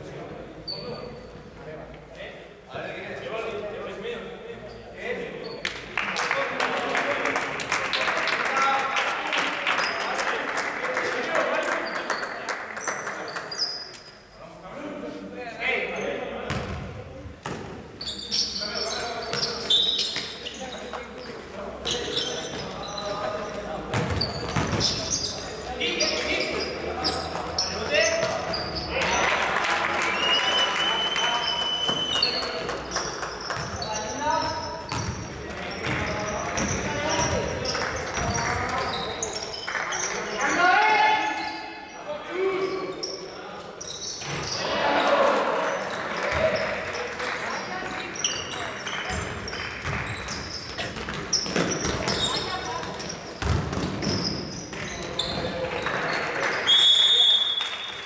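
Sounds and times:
players calling and shouting: 8.0 - 57.5
basketball bouncing: 23.9 - 24.9, 34.9 - 35.2, 49.1 - 54.2.

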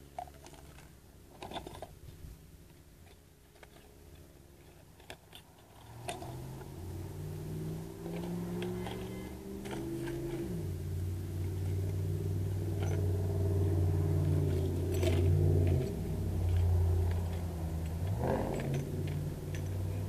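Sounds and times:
chainsaw engine running: 5.8 - 20.0.

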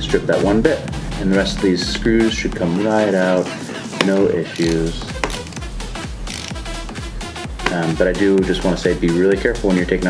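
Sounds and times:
electronic music with kick drum: 0.0 - 10.0.

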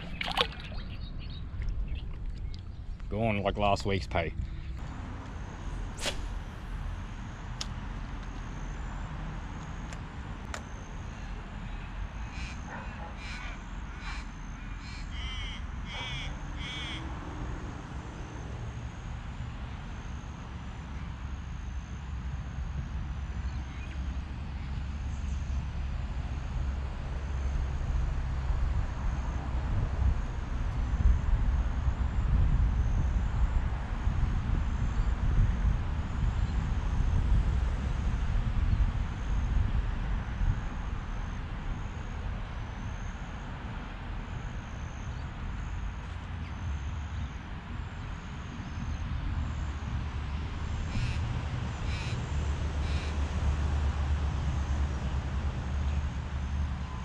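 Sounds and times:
low rough rumble: 0.0 - 3.1
crow cawing: 12.3 - 17.0, 51.9 - 52.2.

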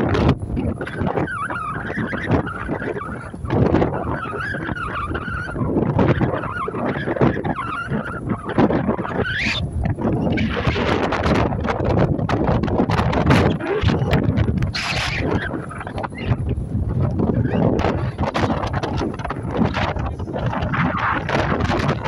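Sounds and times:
boat rumble: 0.0 - 22.0
wind buffeting microphone: 0.0 - 22.0
wavering whistle-like tone: 0.8 - 10.6, 13.4 - 16.4, 17.3 - 18.6.

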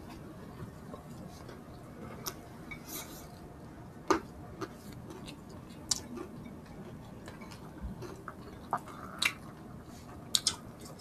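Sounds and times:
chewing crispy food: 4.0 - 11.0.

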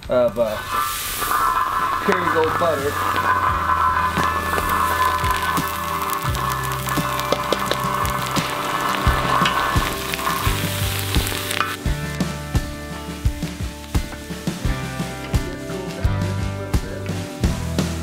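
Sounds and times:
vegetables sizzling on hot metal: 0.0 - 18.0
spatula clicking and scraping metal: 0.5 - 11.8.

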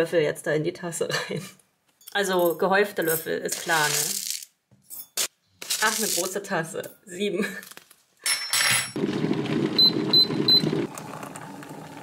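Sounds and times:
kettle rumbling at the boil: 9.0 - 12.0.

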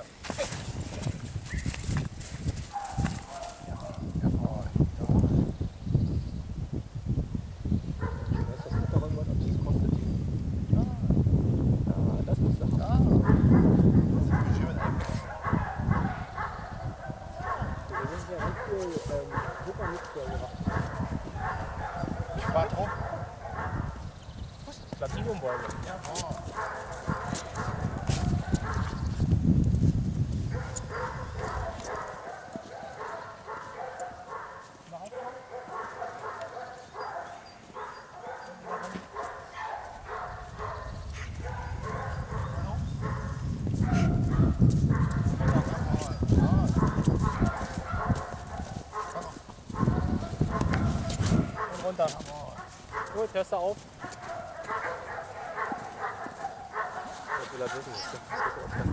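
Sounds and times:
wind rumbling on microphone: 0.0 - 58.9.

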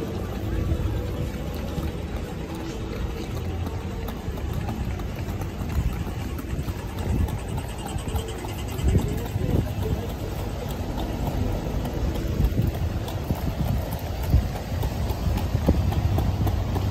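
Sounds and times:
cars idling on wet road: 0.0 - 16.9.

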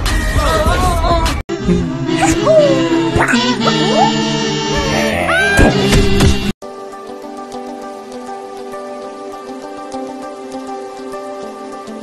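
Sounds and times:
soft music with held chords: 6.6 - 12.0.

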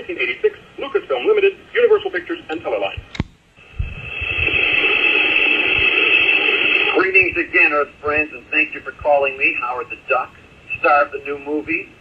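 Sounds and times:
telephone line hiss: 0.0 - 3.0, 3.6 - 12.0
sharp click: 2.5 - 3.4.

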